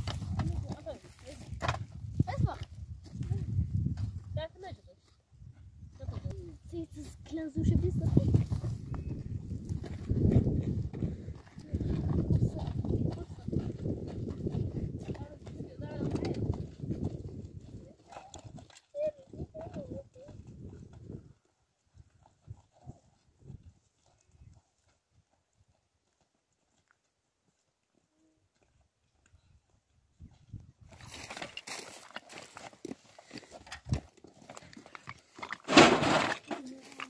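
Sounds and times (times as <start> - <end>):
footsteps on stony ground: 0.0 - 37.0
woman's voice: 0.4 - 1.6, 11.6 - 13.8, 15.1 - 16.5
children's voices: 18.9 - 20.4.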